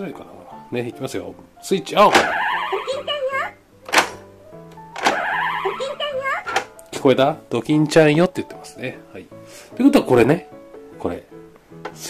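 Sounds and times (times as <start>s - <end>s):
toy recorded character voice: 2.2s - 3.6s, 5.2s - 6.6s.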